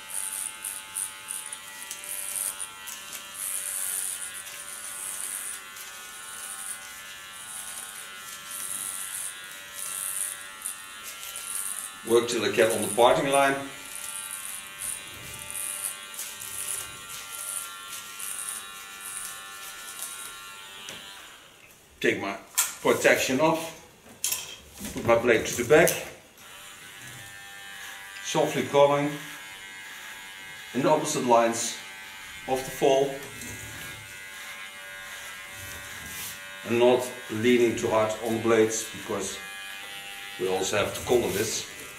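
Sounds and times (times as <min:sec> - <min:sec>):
electric hair clipper buzzing: 0:00.0 - 0:21.6, 0:25.6 - 0:41.9.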